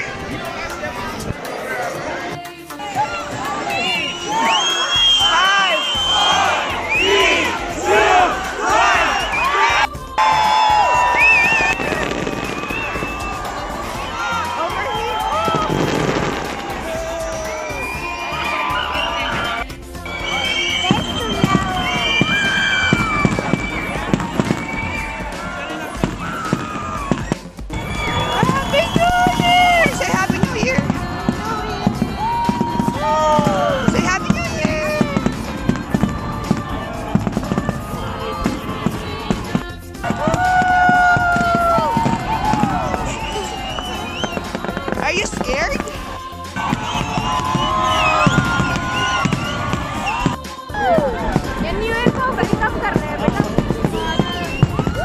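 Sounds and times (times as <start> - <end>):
crowd shouting and cheering: 0.0 - 55.0
fireworks crackling and popping: 3.4 - 55.0.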